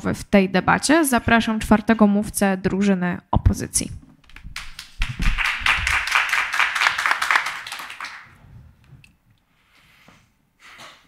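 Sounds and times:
audience applauding: 4.3s - 8.4s.

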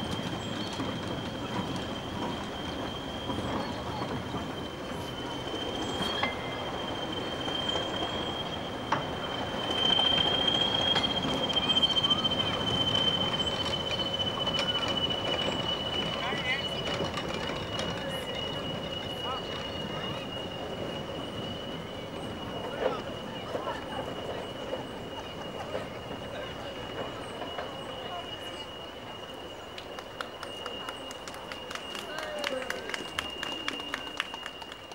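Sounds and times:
train rumbling: 0.0s - 34.9s
train wheels squealing: 0.0s - 34.9s
wheels clicking on rails: 0.0s - 34.9s.

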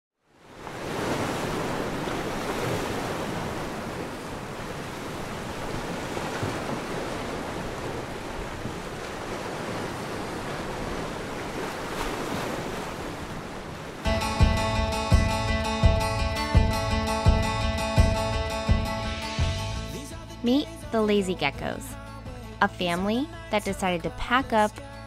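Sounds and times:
ocean surf: 0.4s - 15.1s.

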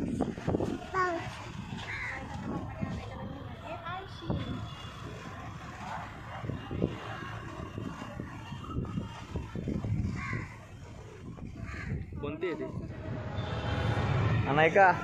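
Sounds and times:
crows cawing: 1.9s - 2.2s, 11.6s - 12.0s
low rumble: 12.8s - 15.0s.

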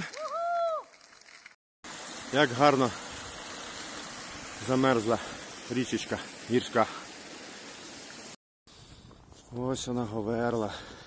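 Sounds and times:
mountain stream rushing: 1.9s - 8.4s.

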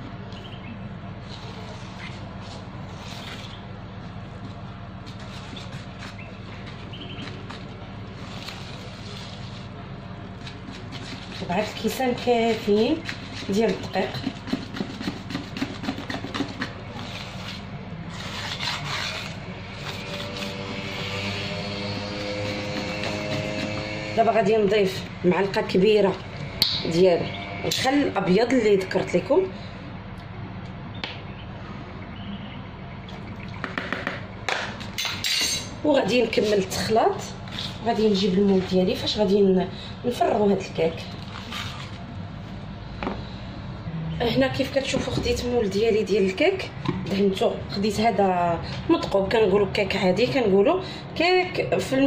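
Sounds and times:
whisk stirring batter in bowl: 10.6s - 17.3s.

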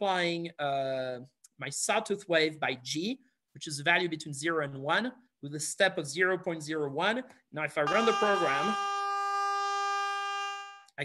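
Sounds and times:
buzzing sawtooth tone: 7.9s - 10.9s.

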